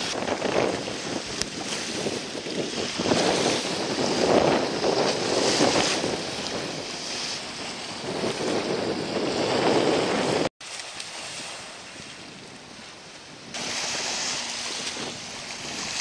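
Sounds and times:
wind buffeting microphone: 0.0 - 10.5, 11.2 - 16.0
waves washing and splashing: 0.0 - 16.0.

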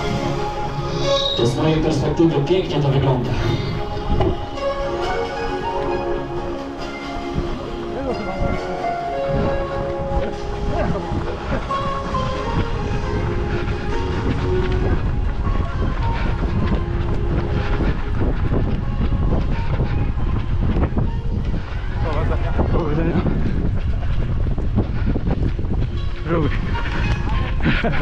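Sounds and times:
wind rumbling on microphone: 0.0 - 28.0.

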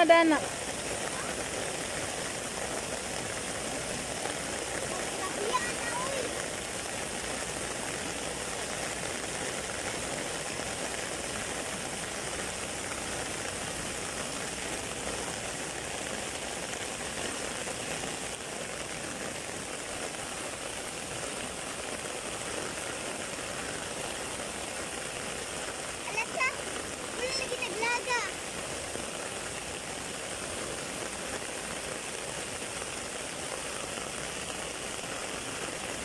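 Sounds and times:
heavy rain on foliage: 0.0 - 36.0.

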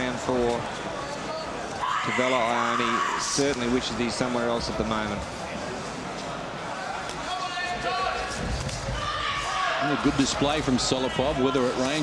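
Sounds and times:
crowd shouting: 6.8 - 12.0.

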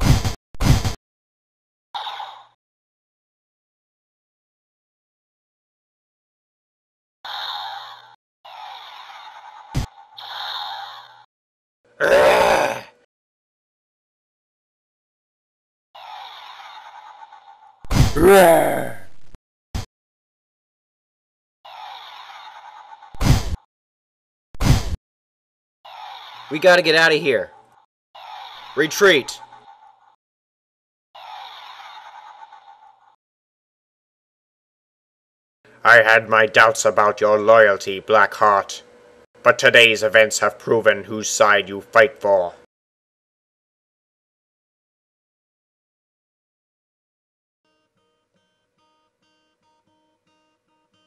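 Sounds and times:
dragon roar: 12.0 - 12.9, 18.2 - 19.1.

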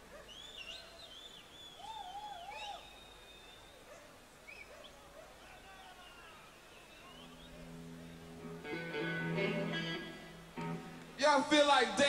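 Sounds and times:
gliding wavering whistles: 0.3 - 3.8, 6.2 - 7.7.

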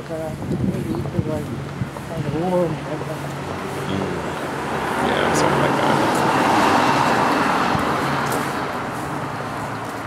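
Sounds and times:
vehicle passing: 1.3 - 10.0.

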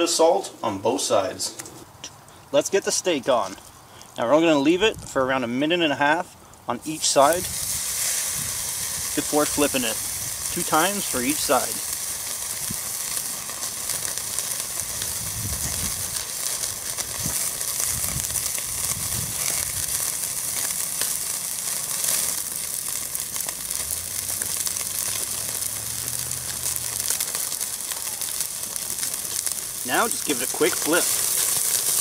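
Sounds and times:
charcoal crackling: 0.9 - 5.2, 6.1 - 32.0
steak sizzling on a grate: 6.8 - 32.0.

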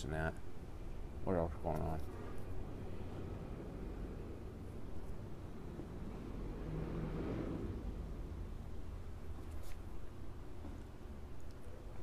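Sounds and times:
low outdoor background rumble: 0.0 - 12.0.

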